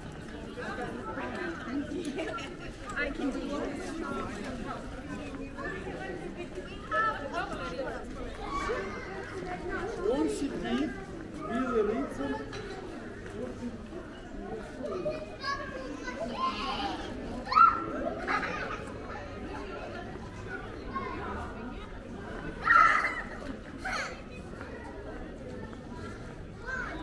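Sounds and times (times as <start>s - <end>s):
people talking and chattering: 0.0s - 27.0s.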